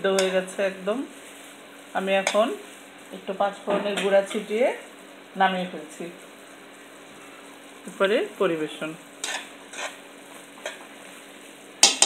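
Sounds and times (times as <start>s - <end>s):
low sizzle: 0.0s - 12.0s
spoon scraping a wok: 0.1s - 0.6s, 2.2s - 2.6s, 9.2s - 10.9s.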